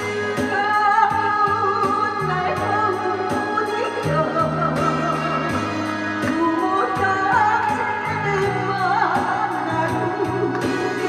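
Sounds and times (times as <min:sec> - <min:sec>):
instrumental accompaniment with beat: 0:00.0 - 0:11.0
woman singing pop song: 0:00.0 - 0:11.0.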